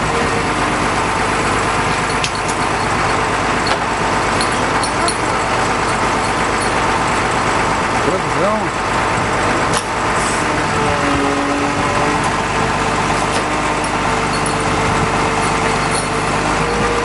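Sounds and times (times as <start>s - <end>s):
motor running: 0.0s - 17.0s.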